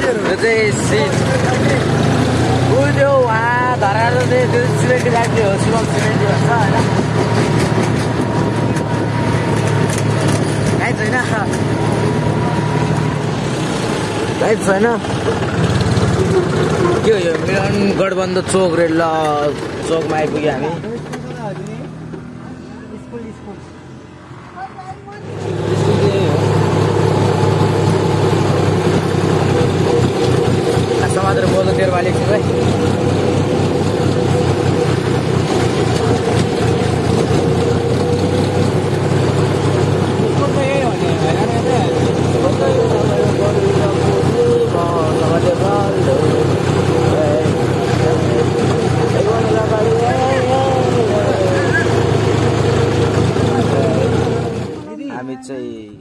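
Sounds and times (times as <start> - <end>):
tractor diesel engine running: 0.0 - 22.6, 25.1 - 54.9
voices of riders: 0.0 - 36.4, 37.1 - 55.7.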